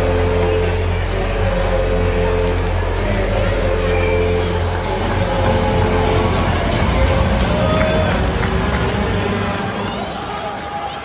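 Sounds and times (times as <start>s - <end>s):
arena pa music: 0.0s - 11.0s
crowd voices and shouts: 0.0s - 11.0s.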